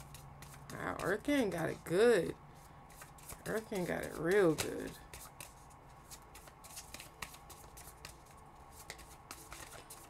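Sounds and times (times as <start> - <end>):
cards being shuffled: 0.0 - 1.6, 2.9 - 10.0.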